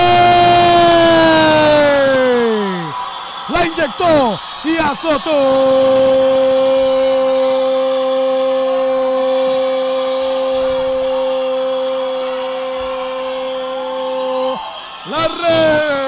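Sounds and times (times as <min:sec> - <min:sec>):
faint crowd cheering: 0:00.0 - 0:16.0.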